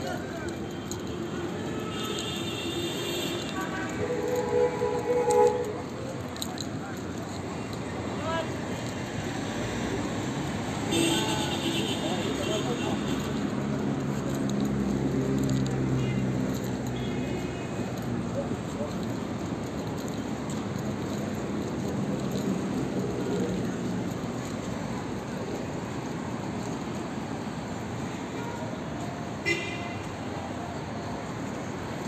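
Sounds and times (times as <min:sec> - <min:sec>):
background traffic: 0:00.0 - 0:32.0
passers-by talking: 0:00.0 - 0:32.0.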